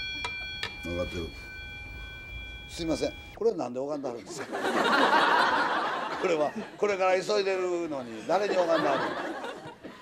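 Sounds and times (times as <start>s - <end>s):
altar bell ringing: 0.0s - 3.4s.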